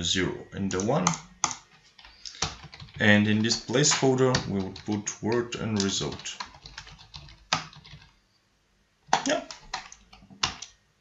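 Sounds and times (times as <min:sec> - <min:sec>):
computer keyboard typing: 0:00.7 - 0:08.2, 0:09.1 - 0:10.8.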